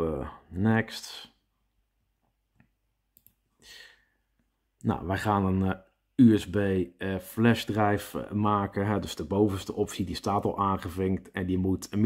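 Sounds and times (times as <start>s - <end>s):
short breath: 3.6s - 4.3s.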